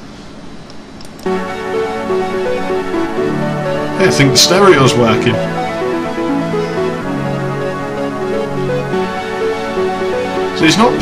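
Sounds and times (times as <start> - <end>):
eight-bit tracker music: 1.2 - 11.0.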